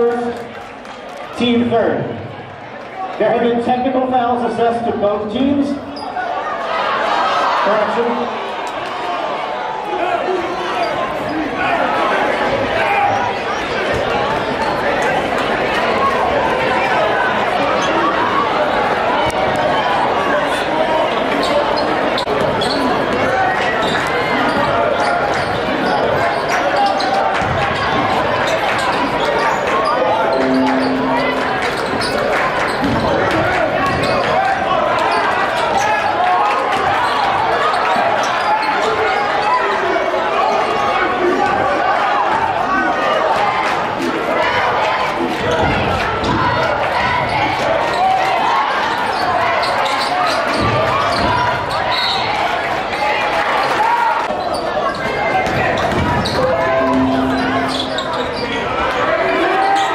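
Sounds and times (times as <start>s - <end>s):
crowd chatter in echoing gym: 0.0s - 59.9s
short steady tone: 30.3s - 32.1s, 56.7s - 58.4s.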